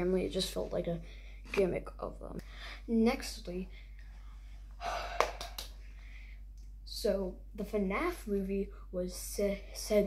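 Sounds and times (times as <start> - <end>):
person gasping: 4.8 - 6.4.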